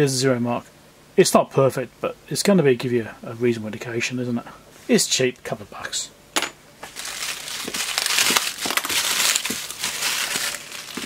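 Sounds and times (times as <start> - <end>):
plastic bag crinkling: 6.8 - 11.0.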